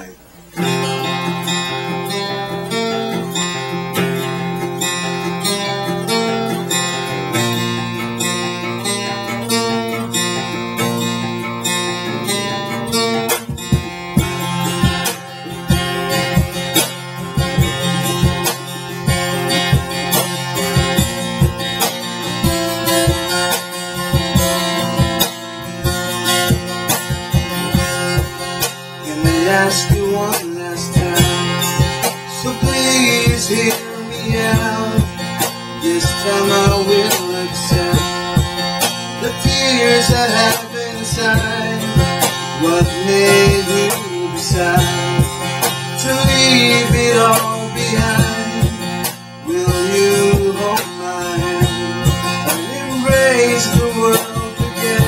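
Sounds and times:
acoustic guitar playing: 0.0 - 55.0
cajon beat: 0.0 - 55.0.

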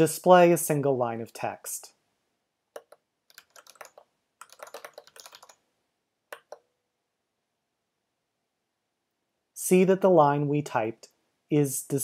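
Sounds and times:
typing on computer keyboard: 2.8 - 5.6, 6.3 - 6.7.

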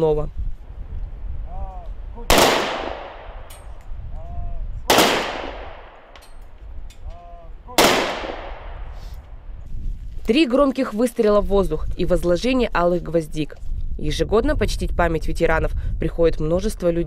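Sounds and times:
pistol volleys echoing: 2.3 - 3.7, 4.9 - 6.4, 7.7 - 8.8.

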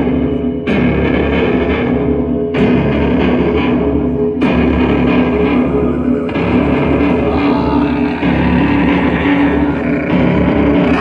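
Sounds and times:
loud live rock music: 0.0 - 11.0.

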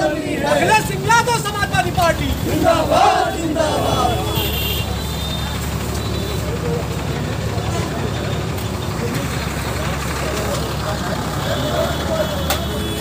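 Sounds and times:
crowd murmur: 0.0 - 13.0
large vehicle engine running: 0.0 - 13.0.

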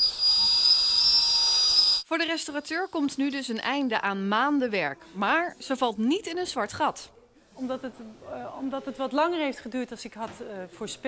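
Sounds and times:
cordless drill driving a screw: 0.0 - 2.0.

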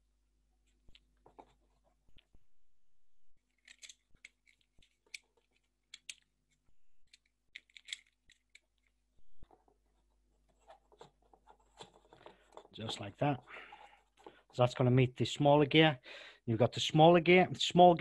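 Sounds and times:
hands handling cardboard parts: 0.6 - 2.4, 3.4 - 14.6.

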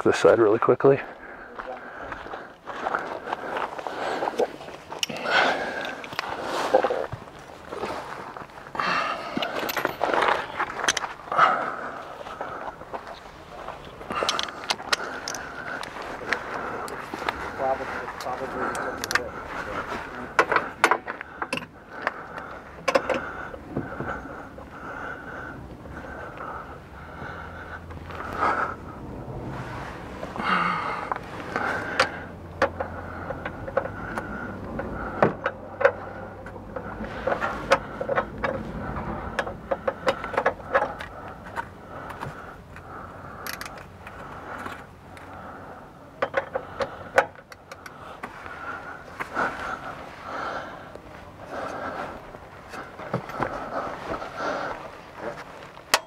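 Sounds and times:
wrench clinking and scraping on metal: 9.3 - 11.1.

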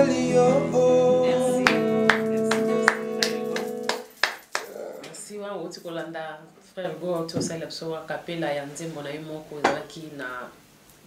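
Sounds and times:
woman speaking: 1.3 - 3.7, 5.0 - 10.6.

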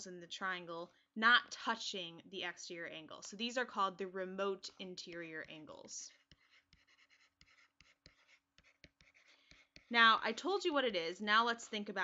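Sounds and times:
stylus writing on tablet: 2.8 - 12.0.

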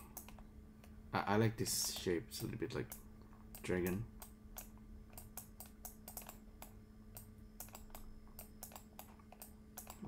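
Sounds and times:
low steady hum: 0.0 - 10.0
keyboard and mouse clicking: 0.1 - 1.0, 1.8 - 10.0.

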